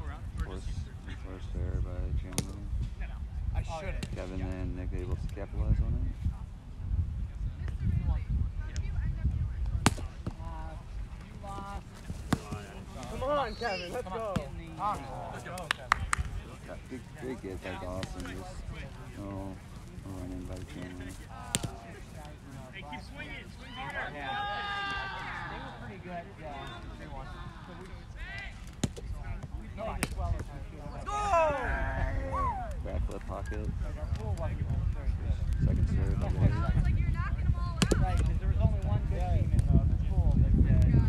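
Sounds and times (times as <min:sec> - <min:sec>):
wind rumble on microphone: 0:00.0 - 0:13.3, 0:29.0 - 0:41.0
ball being struck: 0:09.7 - 0:10.4, 0:21.5 - 0:21.8
player shouting: 0:31.0 - 0:32.7.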